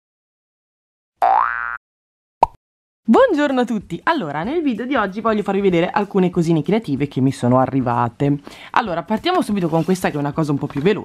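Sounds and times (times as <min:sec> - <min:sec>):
cartoon boing: 0:01.2 - 0:01.8.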